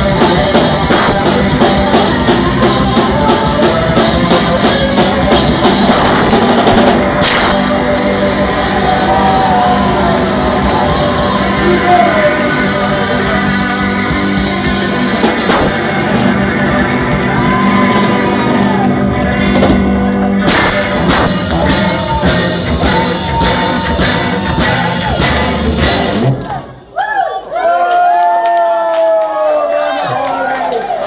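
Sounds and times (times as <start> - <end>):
live rock band playing: 0.0 - 26.6
drum kit: 0.0 - 26.7
electric guitar: 0.0 - 26.7.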